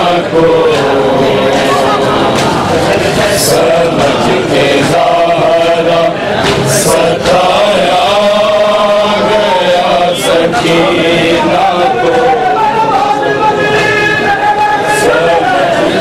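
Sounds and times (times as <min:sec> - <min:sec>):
men chanting a lament: 0:00.0 - 0:16.0.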